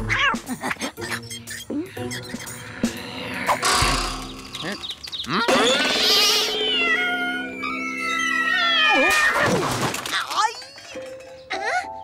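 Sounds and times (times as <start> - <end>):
background music: 0.0 - 12.0
cartoon sound effects: 3.6 - 7.9
cartoon cat crying: 5.9 - 9.5.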